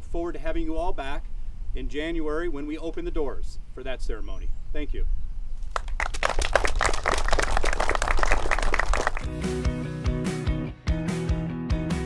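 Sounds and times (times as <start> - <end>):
audience applauding: 5.7 - 9.3
guitar music: 9.2 - 12.0.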